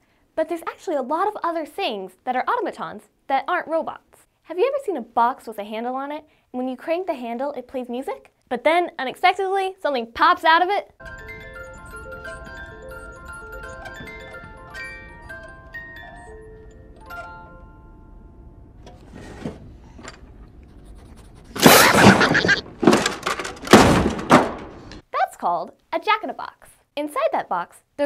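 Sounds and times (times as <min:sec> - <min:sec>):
music box plinking a tune: 0:11.0 - 0:18.4.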